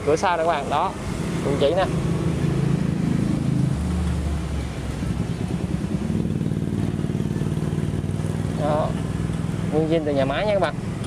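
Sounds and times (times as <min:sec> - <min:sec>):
street traffic engines: 0:00.0 - 0:11.0.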